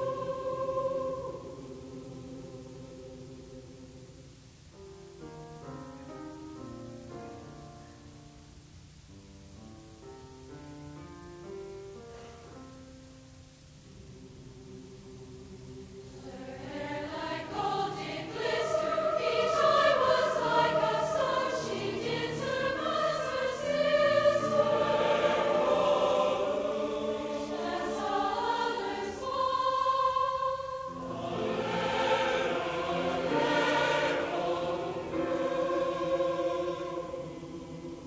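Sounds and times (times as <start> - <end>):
mixed choir singing: 0.0 - 4.3, 14.0 - 38.0.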